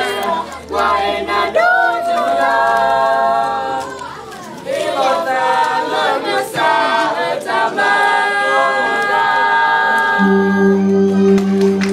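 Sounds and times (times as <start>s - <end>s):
group singing a cappella: 0.0s - 4.0s, 4.6s - 11.1s.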